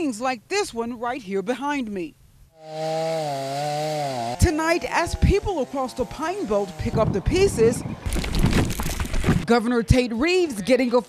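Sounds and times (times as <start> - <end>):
chainsaw cutting wood: 2.6 - 9.4.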